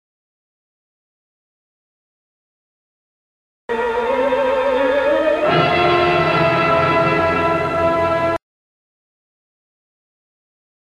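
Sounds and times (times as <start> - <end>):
orchestral sustained chord: 3.7 - 8.4.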